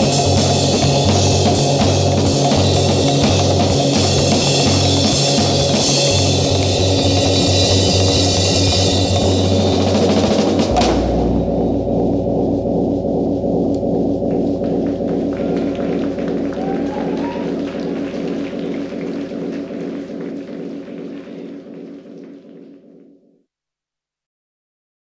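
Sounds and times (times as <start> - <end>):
live band playing: 0.0 - 22.0.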